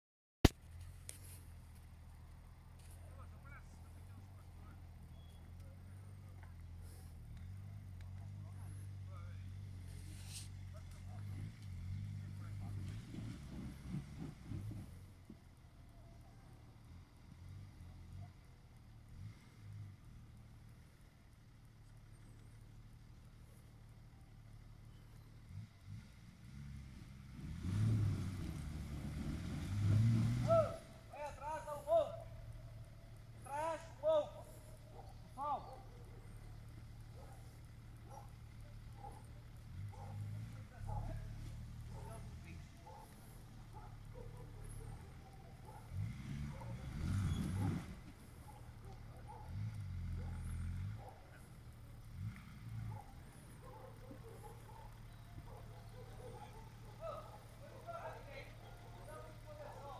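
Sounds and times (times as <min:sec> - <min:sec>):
engine revving under load: 0:02.8 - 0:15.6, 0:16.6 - 0:23.7, 0:24.3 - 0:59.9
onlookers shouting: 0:33.4 - 0:34.7.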